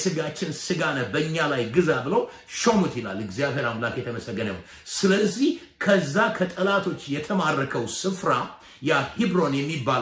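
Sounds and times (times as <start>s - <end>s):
man preaching: 0.0s - 10.0s.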